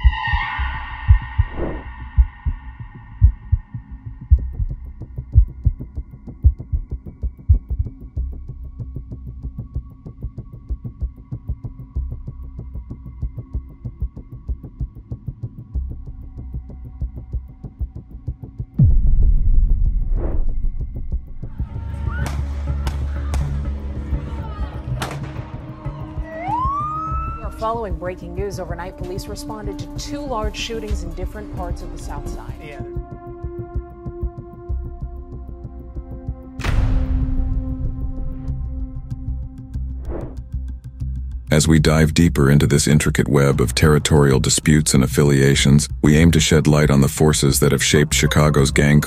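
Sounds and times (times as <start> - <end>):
siren wail: 0.0 - 3.1, 25.5 - 27.9
deep heartbeat-like bass thump: 0.0 - 21.6, 36.2 - 40.6.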